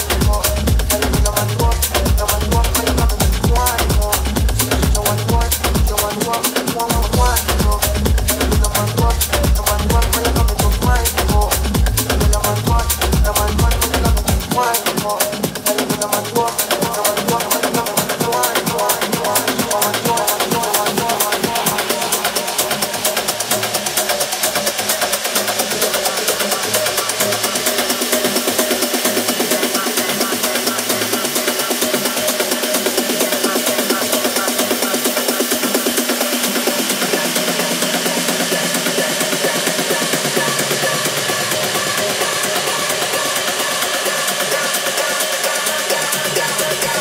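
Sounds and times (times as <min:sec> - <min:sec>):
house music with fast beat: 0:00.0 - 0:47.0.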